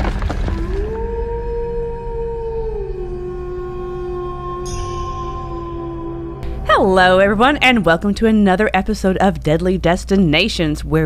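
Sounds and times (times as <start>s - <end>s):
low rumble: 0.0s - 10.2s
wolf howling: 0.4s - 7.8s.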